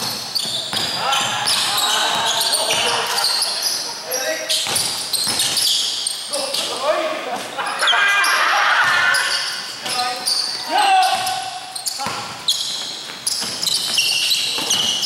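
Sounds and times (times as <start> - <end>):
sneakers squeaking on floor: 0.0 - 15.0
basketball bouncing on hardwood: 4.6 - 5.6.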